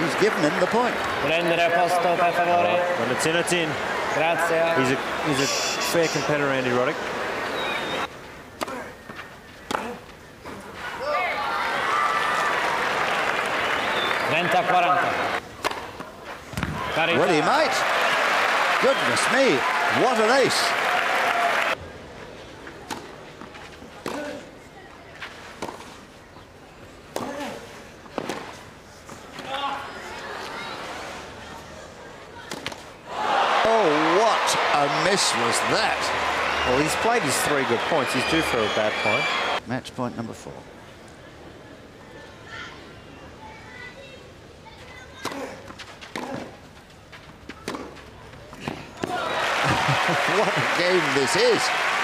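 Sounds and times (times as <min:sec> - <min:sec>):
crowd cheering and applauding: 0:11.4 - 0:15.4, 0:16.8 - 0:21.8, 0:33.1 - 0:39.6, 0:49.1 - 0:52.0
tennis ball hit by rackets: 0:15.6 - 0:16.8, 0:27.1 - 0:27.5, 0:45.2 - 0:46.5, 0:47.6 - 0:48.0.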